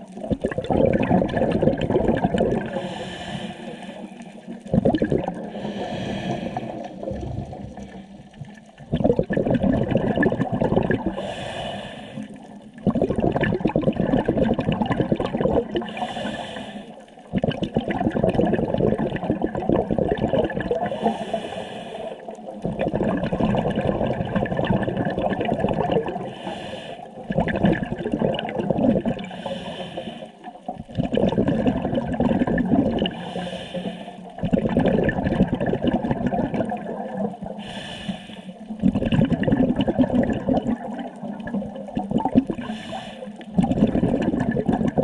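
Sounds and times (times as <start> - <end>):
bubbles gurgling underwater: 0.0 - 45.0
regulator inhale hiss: 2.7 - 4.4, 5.5 - 7.1, 11.2 - 12.5, 15.9 - 17.1, 20.8 - 22.4, 26.2 - 27.2, 29.2 - 30.5, 33.2 - 34.4, 37.6 - 38.7, 42.6 - 43.5.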